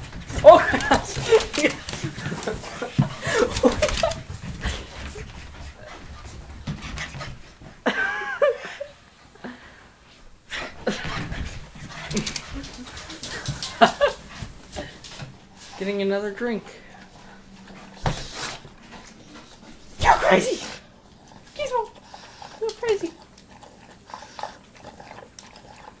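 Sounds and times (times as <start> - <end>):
dog moving about: 0.0 - 7.8, 10.8 - 16.0
dog breathing: 9.3 - 20.0, 20.6 - 26.0.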